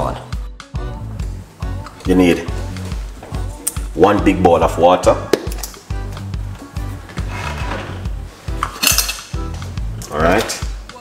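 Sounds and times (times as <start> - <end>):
background music with bass beat: 0.0 - 11.0
kitchenware clinking: 8.5 - 9.4.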